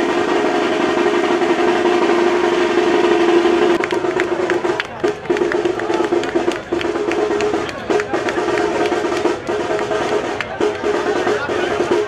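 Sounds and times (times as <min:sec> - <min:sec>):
band playing: 0:00.0 - 0:12.0
drum strikes: 0:00.0 - 0:12.0.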